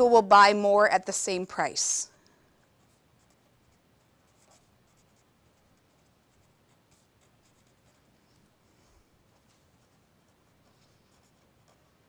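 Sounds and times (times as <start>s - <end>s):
marker scratching on paper: 2.6s - 12.0s.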